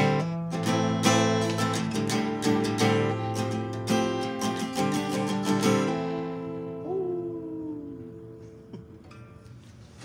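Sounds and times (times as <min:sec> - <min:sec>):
acoustic guitar chord ringing: 0:00.0 - 0:09.6
person singing a drawn-out note: 0:06.7 - 0:08.6.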